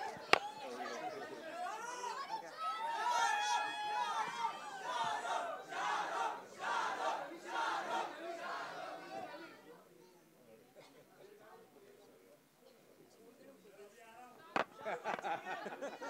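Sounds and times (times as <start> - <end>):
crowd shouting: 0.0 - 9.4.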